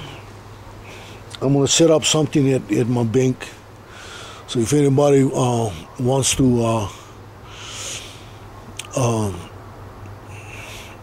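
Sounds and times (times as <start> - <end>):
man speaking: 1.3 - 3.7, 4.4 - 7.2, 8.8 - 9.5
man breathing in: 3.8 - 4.5, 7.0 - 8.5, 10.2 - 11.0
mouth click: 8.7 - 9.0.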